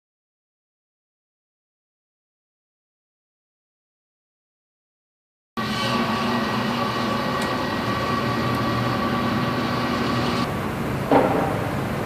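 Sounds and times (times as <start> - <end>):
machinery humming and whirring: 5.6 - 12.0.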